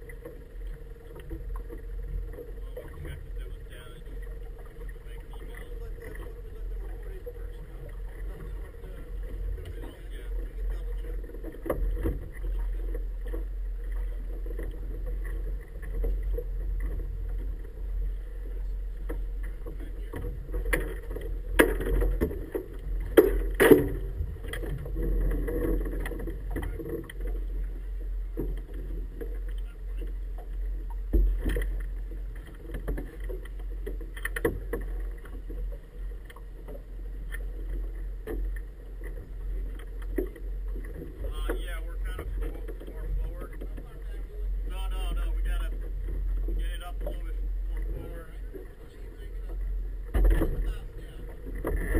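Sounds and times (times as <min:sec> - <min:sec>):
steady low rumble: 0:00.0 - 0:51.9
boat knocking against dock: 0:01.2 - 0:27.7, 0:28.3 - 0:51.9.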